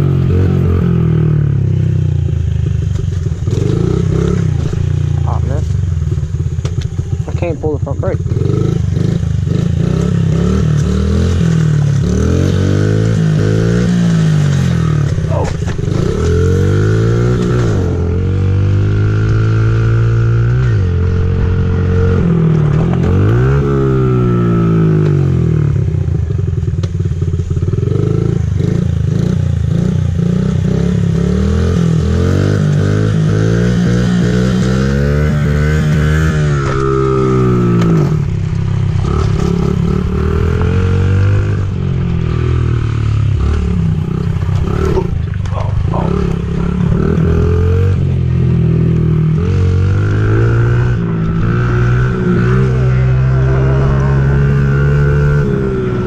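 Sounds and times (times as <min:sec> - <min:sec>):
dirt bike engine revving: 0:00.0 - 0:26.6, 0:27.2 - 0:56.0.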